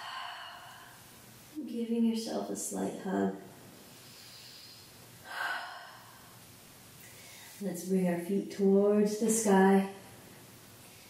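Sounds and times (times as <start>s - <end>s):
woman breathing: 0.0s - 1.3s, 3.8s - 7.6s.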